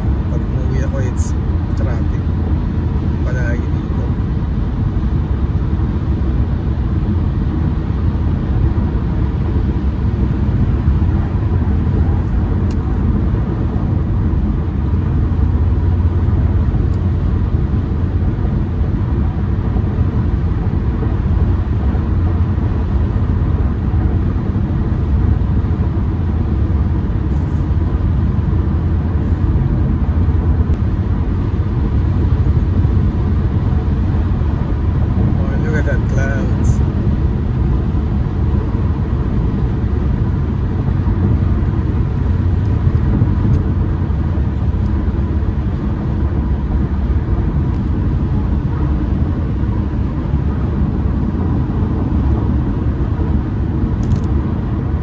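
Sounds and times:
road and tyre drone: 0:00.0 - 0:55.0.

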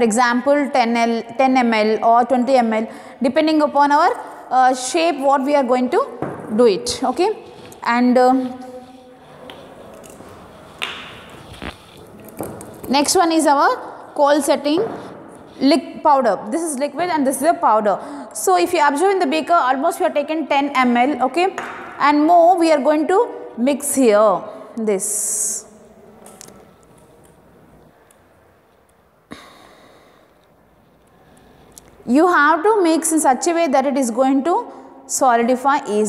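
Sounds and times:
bottles knocking on bench: 0:06.2 - 0:06.5.

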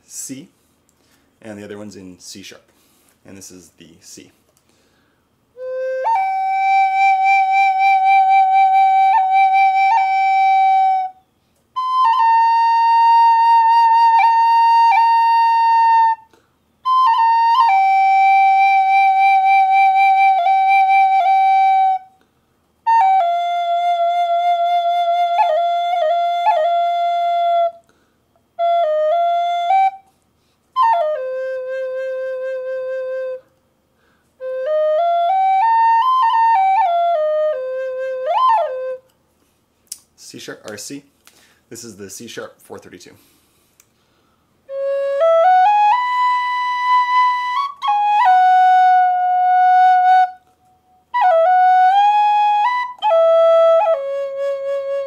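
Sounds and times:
bamboo flute long notes: 0:05.6 - 0:22.2, 0:22.9 - 0:27.9, 0:28.6 - 0:30.1, 0:30.8 - 0:33.5, 0:34.4 - 0:39.1, 0:44.7 - 0:55.0.

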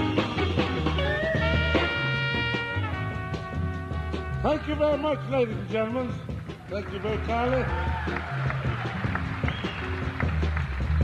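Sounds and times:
bass line: 0:00.0 - 0:11.0
drums: 0:00.0 - 0:11.0.

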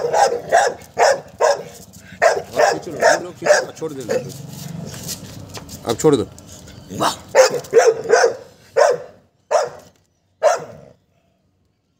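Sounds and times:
dog barking: 0:00.0 - 0:04.4, 0:07.0 - 0:11.0.

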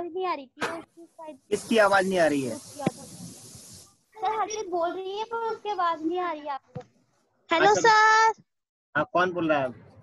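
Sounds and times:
line noise hiss: 0:00.6 - 0:06.2.

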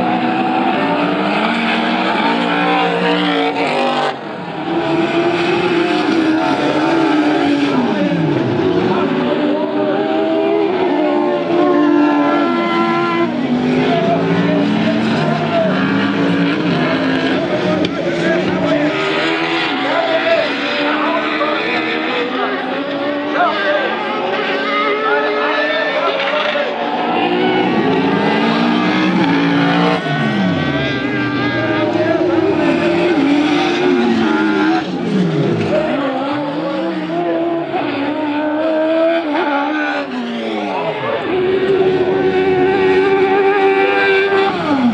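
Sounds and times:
racing buggy engines revving: 0:00.0 - 0:44.9.

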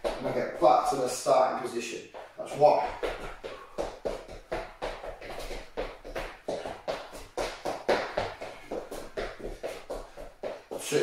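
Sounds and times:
quick footsteps on hard floor: 0:00.0 - 0:11.0.

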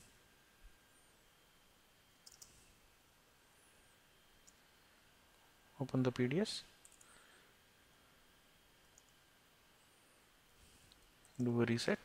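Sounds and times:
computer mouse clicks: 0:02.2 - 0:02.6, 0:06.8 - 0:07.1, 0:08.9 - 0:09.2.

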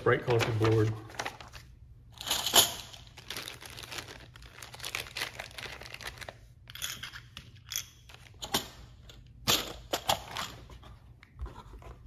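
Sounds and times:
plastic bag crinkling: 0:02.9 - 0:06.5.

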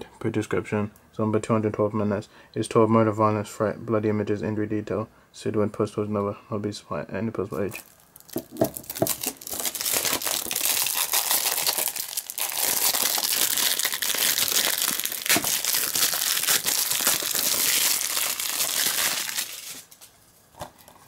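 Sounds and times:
plastic wrap crinkling: 0:07.5 - 0:20.2.

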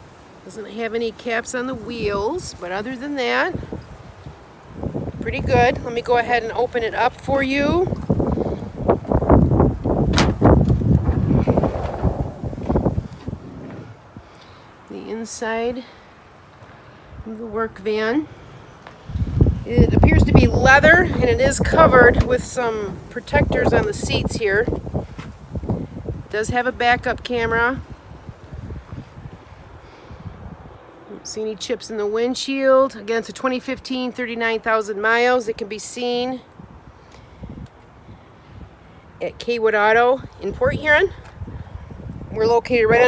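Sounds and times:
wind buffeting microphone: 0:01.6 - 0:15.7, 0:19.0 - 0:31.0, 0:36.4 - 0:43.0
van door latch click: 0:10.1 - 0:10.6
sliding door rolling open: 0:10.1 - 0:14.0.

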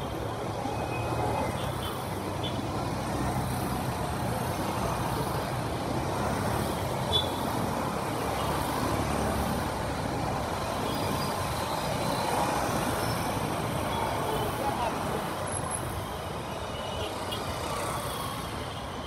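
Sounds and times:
road traffic noise: 0:00.0 - 0:19.0.

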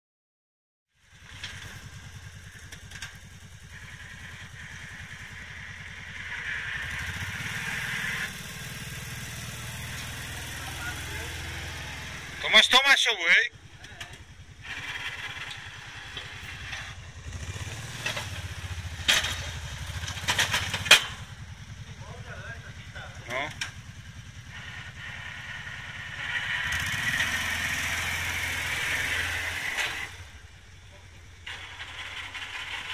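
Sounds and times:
atv engine throbbing: 0:01.0 - 0:32.9
plow blade pushing snow hiss: 0:01.2 - 0:12.4, 0:14.5 - 0:20.0, 0:24.3 - 0:30.4, 0:31.4 - 0:32.9.

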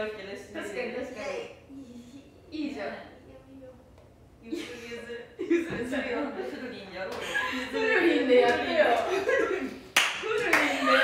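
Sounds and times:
women laughing: 0:04.4 - 0:09.8
women talking: 0:04.4 - 0:11.0
sharp hand claps: 0:09.9 - 0:10.8.

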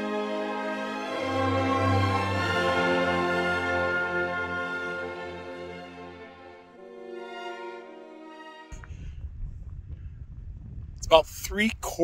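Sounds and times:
wind buffeting microphone: 0:08.8 - 0:12.0.

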